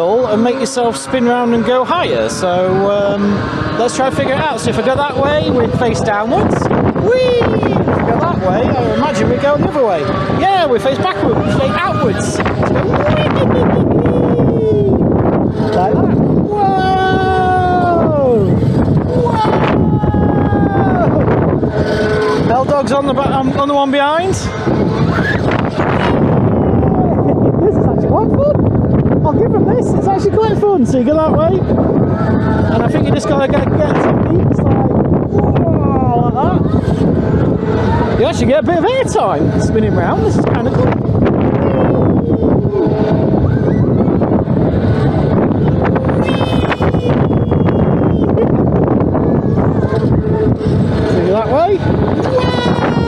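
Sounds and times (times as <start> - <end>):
wind buffeting microphone: 0.0 - 53.0
person crying out high-pitched: 19.1 - 21.2, 46.2 - 48.4, 52.2 - 53.0.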